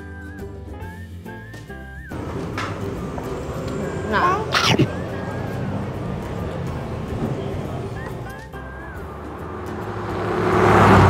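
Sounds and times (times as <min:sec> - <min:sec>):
people talking: 0:02.2 - 0:08.7
high wavering cry: 0:03.6 - 0:06.0.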